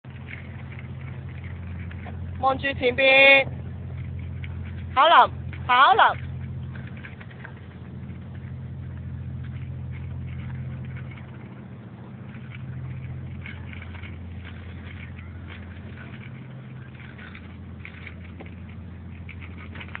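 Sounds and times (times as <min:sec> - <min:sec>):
bicycle rolling over paving: 0:00.0 - 0:20.0
steady low hum: 0:00.0 - 0:20.0
light clicks and rattles: 0:00.1 - 0:20.0.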